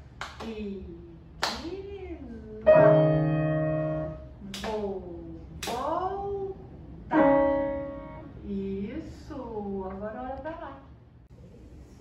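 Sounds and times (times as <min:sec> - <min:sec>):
piano chords ringing: 0:02.6 - 0:04.4, 0:07.0 - 0:08.5.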